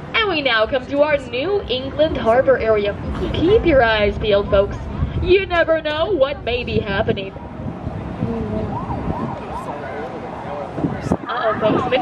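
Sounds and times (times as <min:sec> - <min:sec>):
siren wailing: 0:07.1 - 0:10.2.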